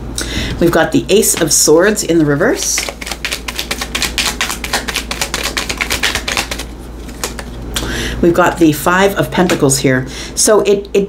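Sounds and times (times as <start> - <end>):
cards being shuffled: 2.2 - 7.6.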